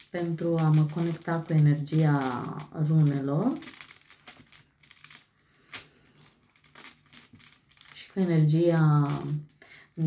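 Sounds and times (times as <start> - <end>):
stones clicking in pouch: 0.0 - 9.6.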